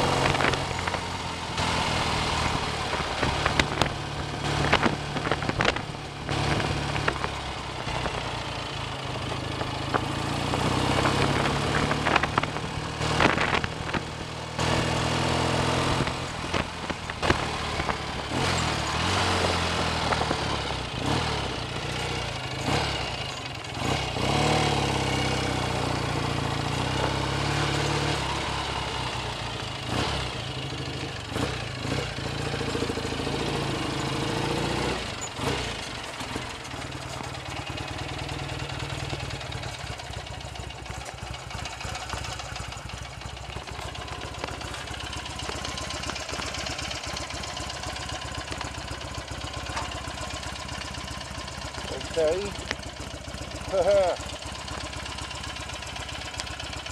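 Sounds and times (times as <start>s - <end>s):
motorcycle engine revving and idling: 0.0s - 56.9s.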